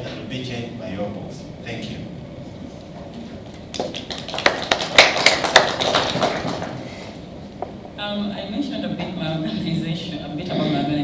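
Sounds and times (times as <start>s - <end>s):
audience applause: 3.7s - 7.0s.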